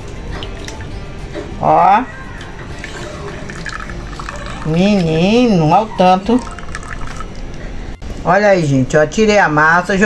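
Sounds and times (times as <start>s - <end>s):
liquid dripping into glass bowl: 0.0s - 1.1s, 2.3s - 7.7s.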